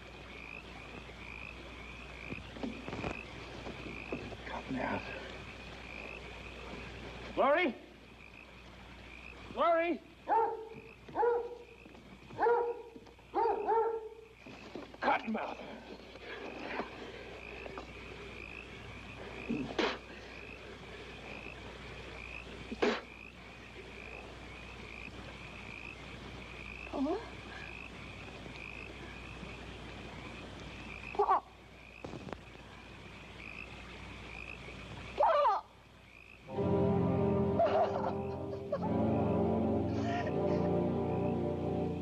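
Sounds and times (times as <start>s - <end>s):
frog croaks: 0.0s - 36.6s, 39.8s - 42.0s
frogs trilling: 0.0s - 42.0s
orchestral music: 36.5s - 42.0s.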